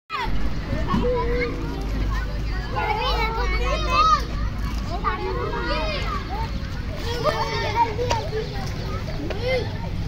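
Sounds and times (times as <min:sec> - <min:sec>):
children talking and calling out: 0:00.1 - 0:10.0
low rumble: 0:00.2 - 0:03.7.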